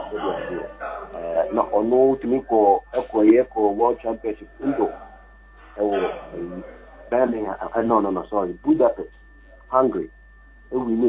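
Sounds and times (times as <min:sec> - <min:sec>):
man talking over telephone: 0:00.0 - 0:05.0, 0:05.8 - 0:09.1, 0:09.7 - 0:10.1, 0:10.7 - 0:11.0.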